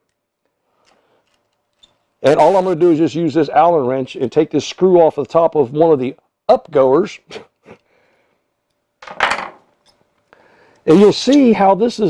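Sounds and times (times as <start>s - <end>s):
small metal parts clattering: 9.0s - 10.0s.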